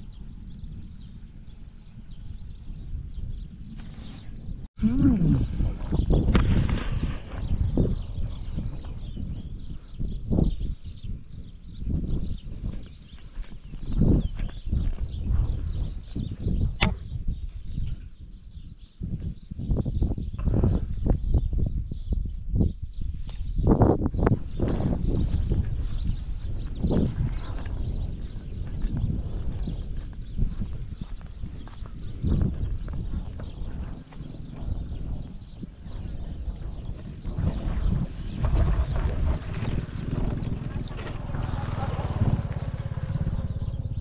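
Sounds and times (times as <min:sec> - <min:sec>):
wind rumbling on microphone: 0:00.0 - 0:44.0
footsteps on dirt road: 0:12.7 - 0:15.4, 0:24.5 - 0:35.2.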